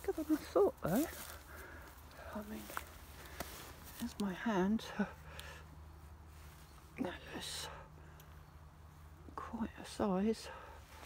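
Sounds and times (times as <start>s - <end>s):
woman speaking: 0.0s - 1.2s, 4.0s - 5.2s, 7.0s - 7.8s, 9.3s - 10.6s
distant road traffic rumble: 0.0s - 11.0s.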